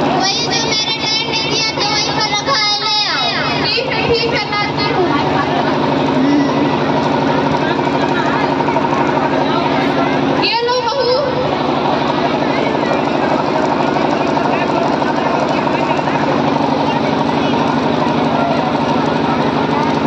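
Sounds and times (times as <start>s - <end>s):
indistinct voices: 0.0s - 20.0s
pulsing motor drone: 0.0s - 20.0s.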